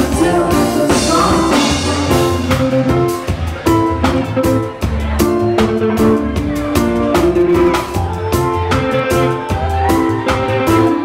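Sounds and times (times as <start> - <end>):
drum strikes: 0.0 - 8.8
electric bass deep notes: 0.0 - 11.0
live reggae-rock band playing: 0.0 - 11.0.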